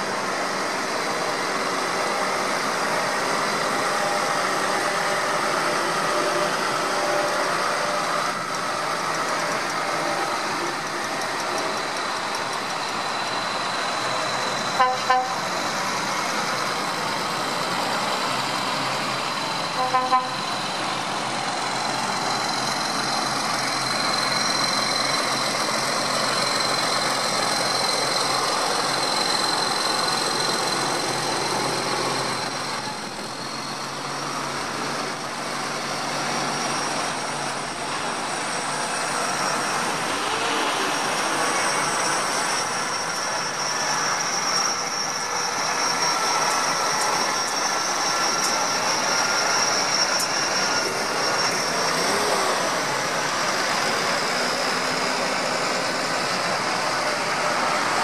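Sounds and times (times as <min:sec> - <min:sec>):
tractor engines running: 0:00.0 - 0:58.0
horn tooting: 0:14.8 - 0:15.5, 0:19.8 - 0:20.5.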